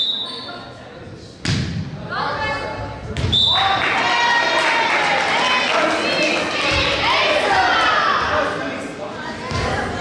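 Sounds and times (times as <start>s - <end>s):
players shouting: 3.6s - 8.6s.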